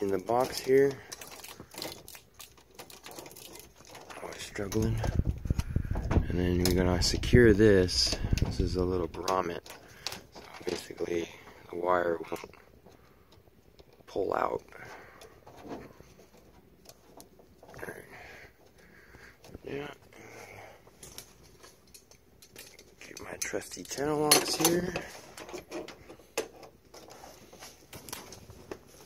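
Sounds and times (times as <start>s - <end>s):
wires clicking in metal box: 0.0s - 17.8s, 21.0s - 28.9s
faint handling noise: 0.0s - 29.0s.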